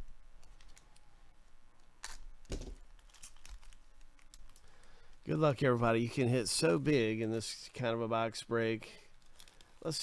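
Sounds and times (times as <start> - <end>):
foil wrapper crinkling and tearing: 2.0 - 5.2, 9.1 - 10.0.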